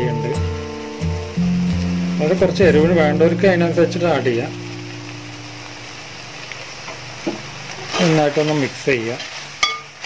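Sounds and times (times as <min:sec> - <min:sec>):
food bubbling and sizzling in pot: 0:00.0 - 0:10.0.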